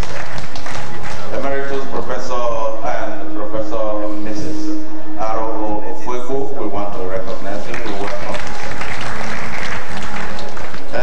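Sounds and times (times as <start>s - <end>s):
man speaking over pa system: 1.2s - 8.6s
steady tone: 1.2s - 8.8s.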